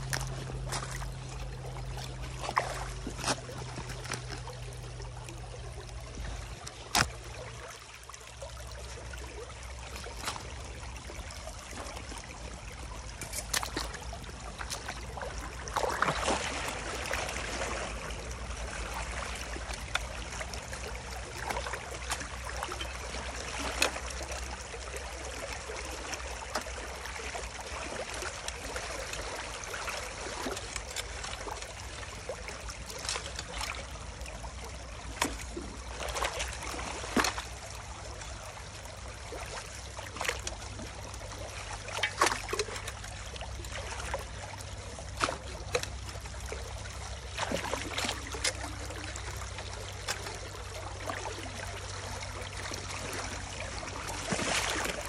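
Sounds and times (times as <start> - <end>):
rake splashing and scraping in water: 0.0 - 7.5, 9.5 - 24.8, 26.2 - 38.4, 39.3 - 51.6, 52.7 - 55.0.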